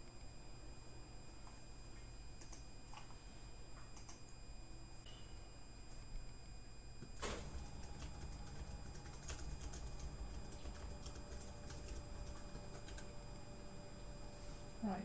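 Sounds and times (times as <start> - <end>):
low steady hum: 0.0 - 15.0
computer keys clicking: 2.4 - 3.1, 3.9 - 4.2, 7.2 - 13.1.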